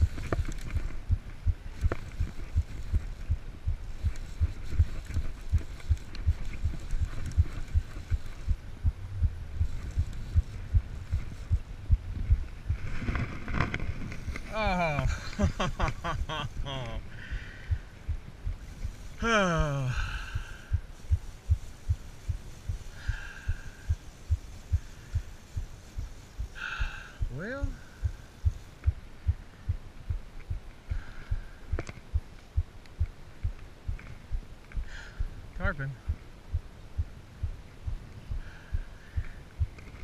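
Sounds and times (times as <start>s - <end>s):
soft low thumps: 0.0s - 40.0s
man groaning in disappointment: 19.2s - 20.0s.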